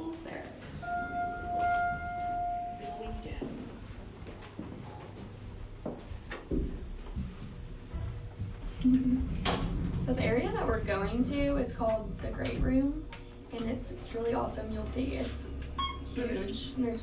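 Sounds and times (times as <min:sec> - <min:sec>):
steady electronic tone: 0:00.8 - 0:04.4
footsteps: 0:01.5 - 0:11.1.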